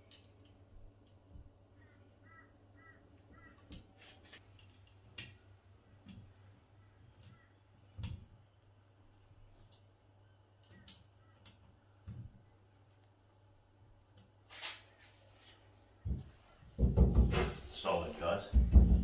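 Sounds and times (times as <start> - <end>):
low steady hum: 0.0 - 14.4
bird calls: 1.8 - 4.2, 6.7 - 8.0, 10.2 - 11.7.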